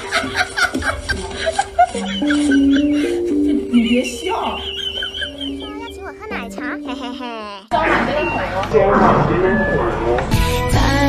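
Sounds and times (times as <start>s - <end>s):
person snickering and chuckling: 0.0s - 3.8s, 4.6s - 7.7s
background music: 0.0s - 7.7s, 10.0s - 11.0s.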